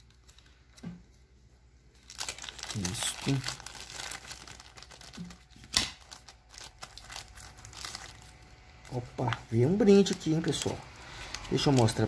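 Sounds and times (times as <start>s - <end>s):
plastic bag crinkling: 1.9s - 12.0s
plastic bag snap: 5.1s - 6.2s.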